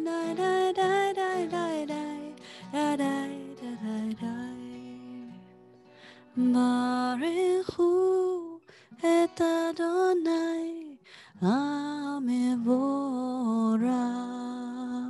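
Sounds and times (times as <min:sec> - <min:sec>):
woman singing: 0:00.0 - 0:05.6, 0:06.2 - 0:15.0.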